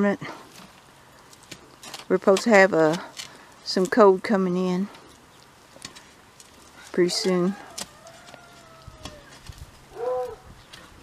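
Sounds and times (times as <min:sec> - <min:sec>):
animal call: 0:06.7 - 0:10.6.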